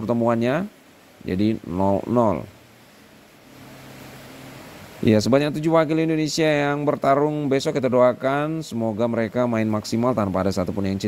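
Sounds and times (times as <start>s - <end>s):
faint background hiss: 0.0s - 11.0s
low steady hum: 0.0s - 11.0s.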